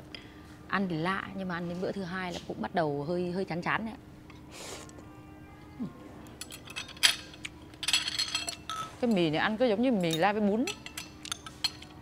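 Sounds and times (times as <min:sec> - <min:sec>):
utensils clinking on ceramic bowl: 0:06.3 - 0:12.0
spoon clattering in bowl: 0:10.0 - 0:12.0.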